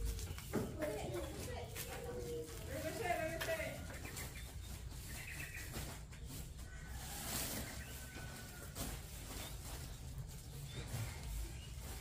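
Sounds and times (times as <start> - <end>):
plastic sack rustling: 0.0 - 12.0.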